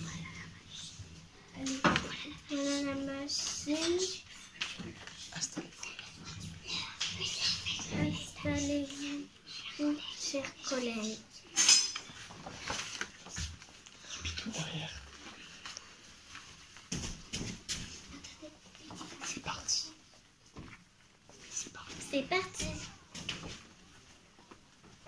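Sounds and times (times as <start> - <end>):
children speaking quietly: 0.0 - 15.7, 17.9 - 20.7, 21.3 - 24.1.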